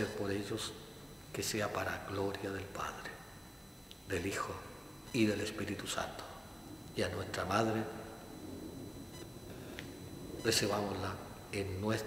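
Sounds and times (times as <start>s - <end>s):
faint high-pitched electronic whine: 0.0s - 12.0s.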